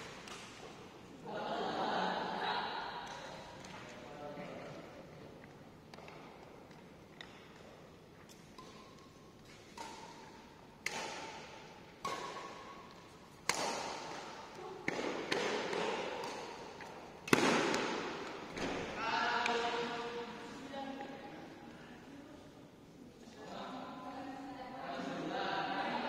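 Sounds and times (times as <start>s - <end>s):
shuttlecock struck by rackets: 8.3s - 19.6s.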